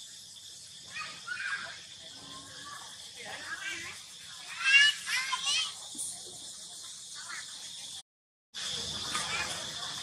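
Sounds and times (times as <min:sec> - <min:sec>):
steady high hiss: 0:00.0 - 0:08.0, 0:08.6 - 0:10.0.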